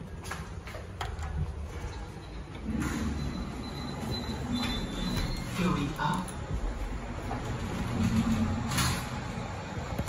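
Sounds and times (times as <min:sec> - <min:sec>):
lift doors sliding shut: 0:01.6 - 0:06.0, 0:06.9 - 0:09.6.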